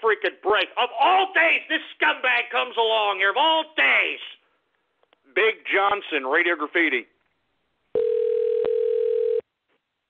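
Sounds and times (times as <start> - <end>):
telephone tone: 7.9 - 9.5.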